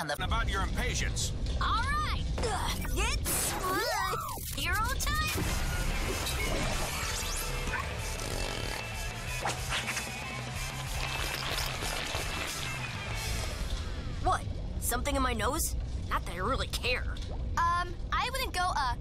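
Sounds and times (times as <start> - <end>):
electronic music: 4.7 - 13.6.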